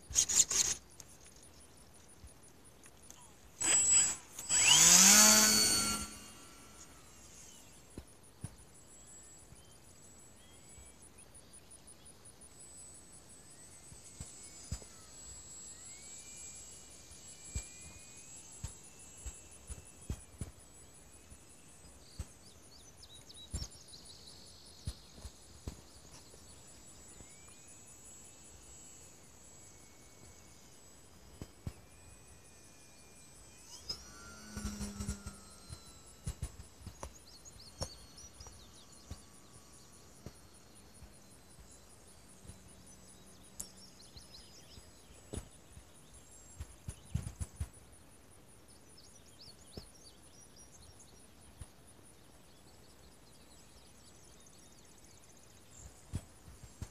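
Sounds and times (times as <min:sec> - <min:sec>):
high-pitched insect trill: 0:00.0 - 0:02.5, 0:03.1 - 0:56.6
low hum: 0:01.5 - 0:47.7.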